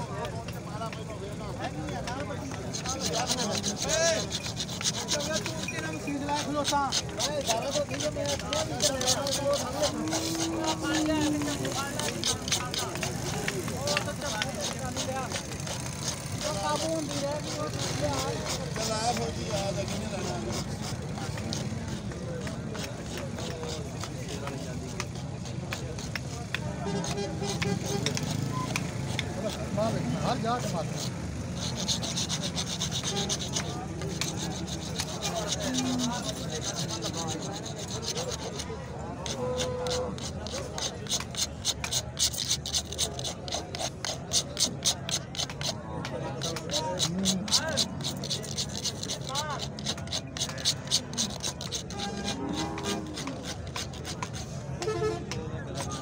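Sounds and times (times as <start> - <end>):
many people talking: 0.0 - 56.0
murmur of voices: 0.0 - 56.0
hand saw cutting horn: 0.2 - 56.0.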